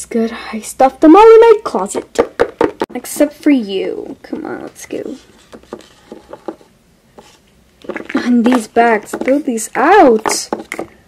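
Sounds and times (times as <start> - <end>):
person speaking: 0.0 - 6.6, 7.2 - 10.9
plastic toy tapping on desk: 2.2 - 2.9, 10.1 - 10.9.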